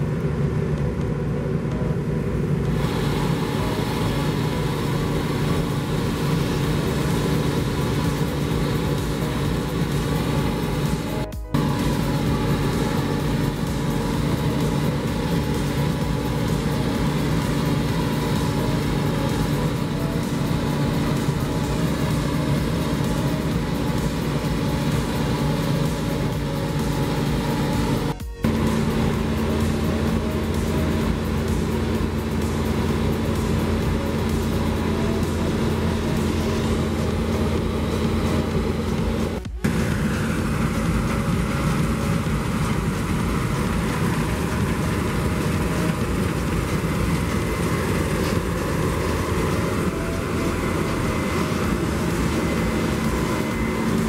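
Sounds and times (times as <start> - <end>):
combine harvester running: 0.0 - 54.0
steady hum: 0.0 - 54.0
auger pouring grain: 2.7 - 54.0.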